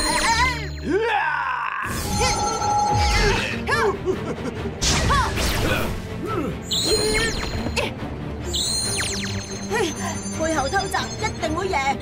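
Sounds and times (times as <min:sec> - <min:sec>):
cartoon soundtrack music: 0:00.0 - 0:12.0.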